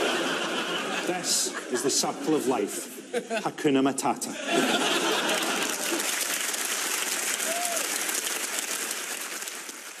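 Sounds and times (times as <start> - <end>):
audience applauding: 4.8 - 10.0.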